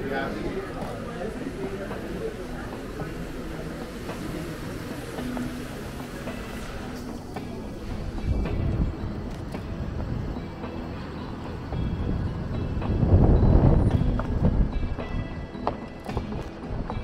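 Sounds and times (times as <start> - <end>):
wind noise on microphone: 7.8 - 10.6, 11.6 - 17.0
footsteps on stone paving: 13.9 - 17.0.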